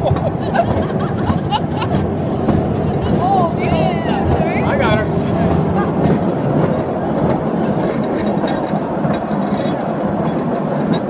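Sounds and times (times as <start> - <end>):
train wheels rumbling on track: 0.0 - 11.0.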